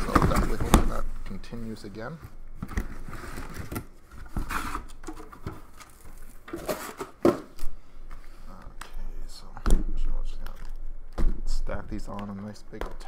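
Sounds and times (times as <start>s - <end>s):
cardboard boxes knocking and scraping: 0.0s - 1.0s.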